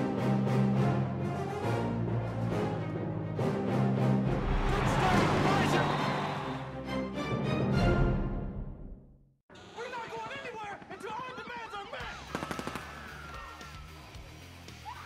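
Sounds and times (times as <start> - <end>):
music: 0.0 - 9.3, 12.0 - 15.0
rapid burst of gunfire: 12.1 - 13.2.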